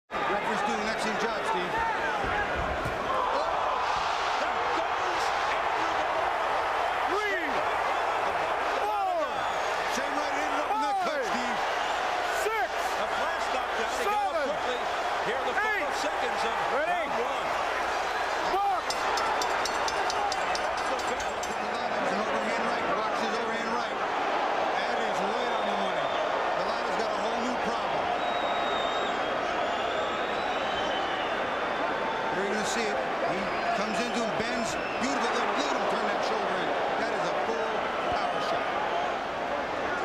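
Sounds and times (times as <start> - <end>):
arena crowd din: 0.1 - 40.0.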